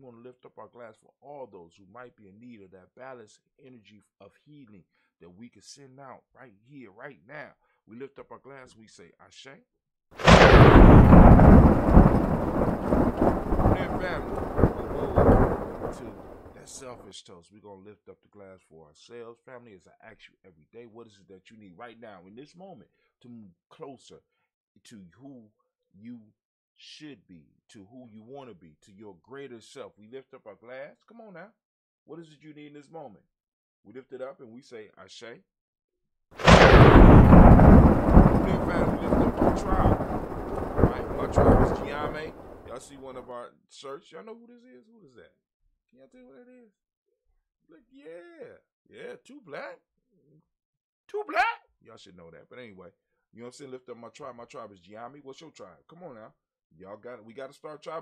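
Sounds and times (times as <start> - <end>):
thunderclap and rolling rumble: 10.2 - 16.8, 36.4 - 42.9
faint voice-like sounds: 13.8 - 17.4, 38.3 - 43.6, 51.1 - 51.6.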